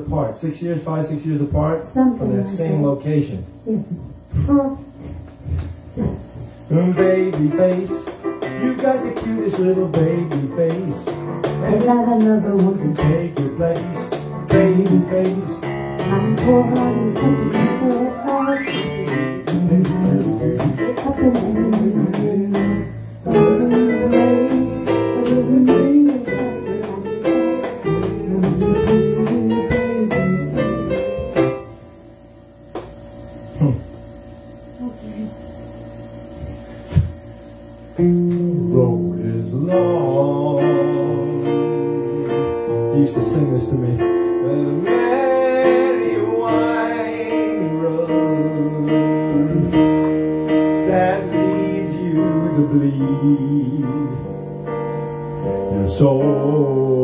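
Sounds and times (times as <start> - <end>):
electronic keyboard playing: 6.8 - 31.9, 38.0 - 57.0.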